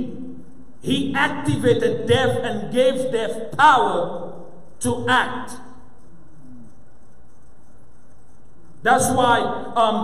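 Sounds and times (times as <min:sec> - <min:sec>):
low hum and hiss of room noise: 0:00.0 - 0:10.0.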